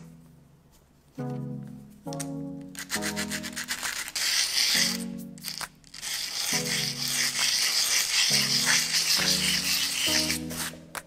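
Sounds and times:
metal scraping on abrasive paper: 0:02.7 - 0:11.0.

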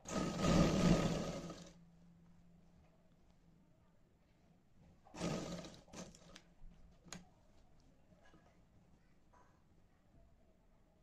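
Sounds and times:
electric sewing machine stitching: 0:00.0 - 0:01.7, 0:05.2 - 0:06.4.

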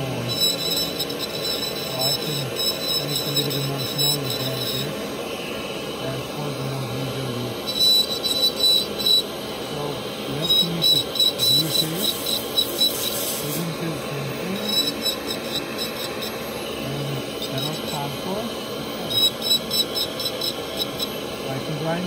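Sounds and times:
dental handpiece motor hum: 0:00.0 - 0:22.0.

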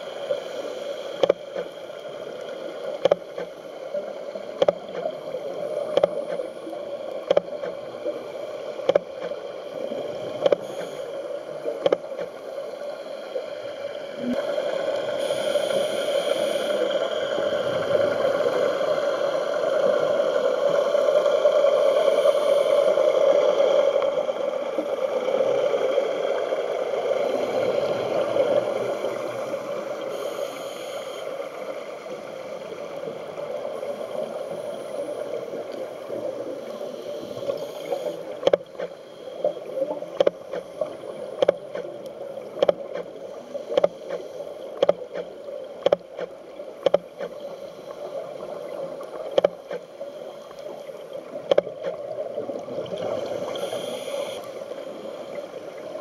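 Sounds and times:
underwater hiss: 0:00.0 - 0:11.8, 0:12.4 - 0:44.6, 0:47.2 - 0:56.0
boat motor hum underwater: 0:00.0 - 0:56.0.

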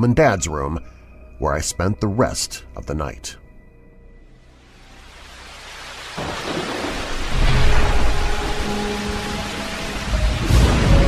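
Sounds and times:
rain hissing: 0:04.4 - 0:11.0
thunder rumble: 0:06.1 - 0:11.0.

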